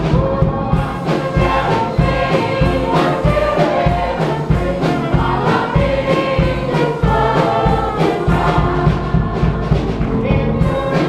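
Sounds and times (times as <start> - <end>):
church choir singing: 0.0 - 11.0
instrumental accompaniment with heavy bass: 0.0 - 11.0.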